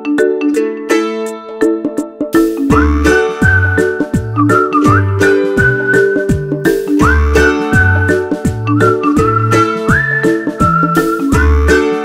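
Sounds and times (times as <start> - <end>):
plucked strings and bass: 0.0 - 12.0
whistled tune: 2.6 - 12.0.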